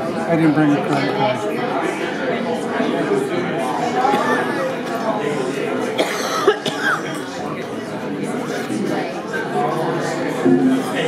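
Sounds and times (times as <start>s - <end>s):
chatter of many voices: 0.0s - 11.0s
sharp cough: 6.0s - 7.2s.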